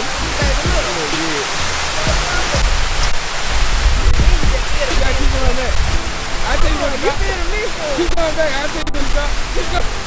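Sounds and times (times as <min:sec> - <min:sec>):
fountain water rushing: 0:00.0 - 0:10.0
music playing: 0:00.0 - 0:10.0.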